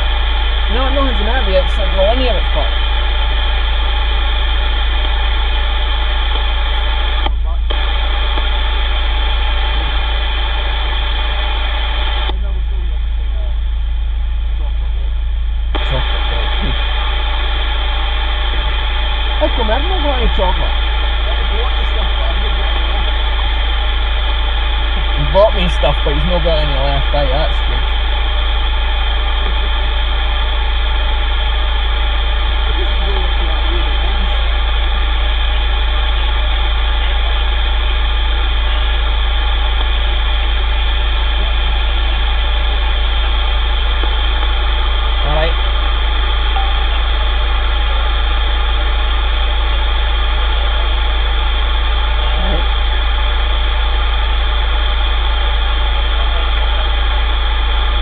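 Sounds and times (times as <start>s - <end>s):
loud low hum: 0.0s - 58.0s
radio static hiss: 0.0s - 58.0s
steady tones: 0.0s - 58.0s
faint distant voices: 24.9s - 28.3s.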